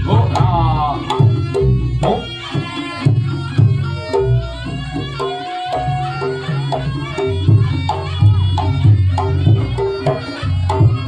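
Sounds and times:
reedy wind instrument: 0:00.0 - 0:11.0.

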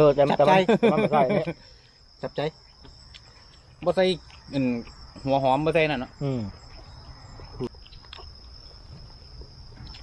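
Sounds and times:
people talking: 0:00.0 - 0:01.6, 0:03.8 - 0:06.6
crickets chirring: 0:00.0 - 0:10.0.

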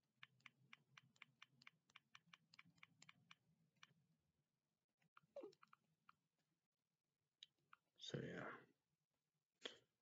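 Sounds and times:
faint mouth clicks: 0:00.2 - 0:03.9.

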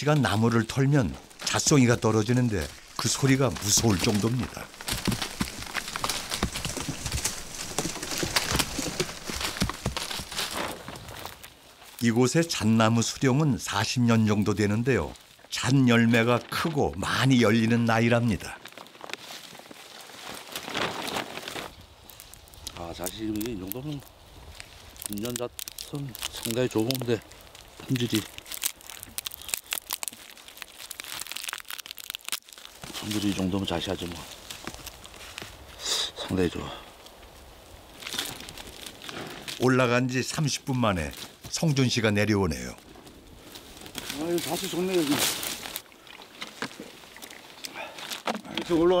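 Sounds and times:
pine cones striking ground and branches: 0:00.0 - 0:49.0
plant matter crackling and crunching: 0:00.0 - 0:49.0.

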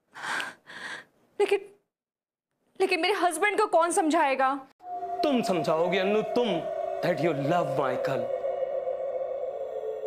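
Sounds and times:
sustained two-note drone: 0:04.8 - 0:10.0.

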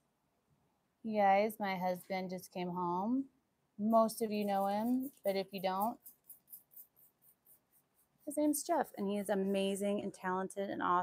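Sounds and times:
wooden stick scratching resin: 0:03.9 - 0:10.2.

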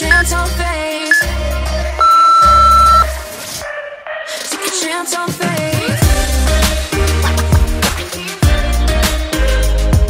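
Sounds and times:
timer long beep: 0:00.0 - 0:00.2, 0:02.0 - 0:03.1
pop music with pulsing bass: 0:00.0 - 0:03.3, 0:04.2 - 0:10.0.

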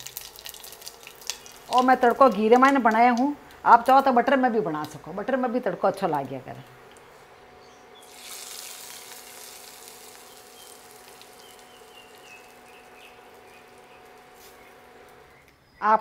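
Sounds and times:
hot oil sizzling: 0:00.0 - 0:05.2, 0:08.0 - 0:15.4
steady low hum: 0:00.0 - 0:16.0.

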